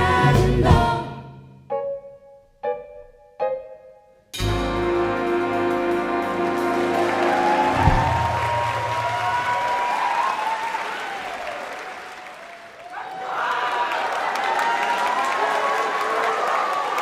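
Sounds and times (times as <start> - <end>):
jazz big band with vocalists: 0.0 - 1.3, 4.4 - 8.0
audience applause and cheering: 5.4 - 17.0.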